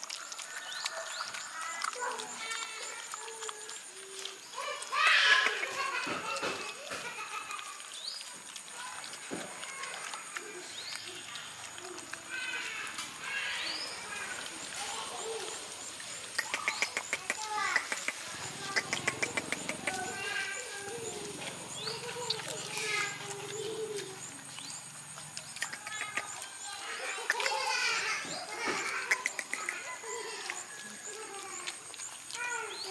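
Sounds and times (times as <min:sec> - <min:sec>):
dogs chewing wetly: 0:00.0 - 0:32.9
faint pitched calls: 0:09.7 - 0:32.9.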